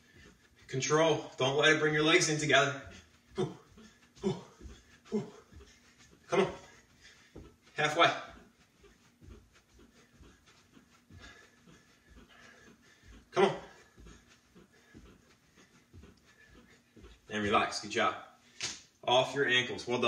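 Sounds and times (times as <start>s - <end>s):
man breathing hard: 0.0s - 0.8s, 2.7s - 17.3s
feet thudding on carpet: 2.8s - 17.3s
man grunting with effort: 3.4s - 5.4s.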